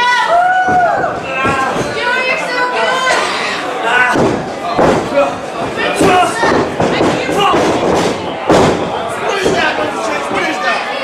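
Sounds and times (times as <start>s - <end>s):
heavy thud on wrestling ring: 4.1s - 9.6s.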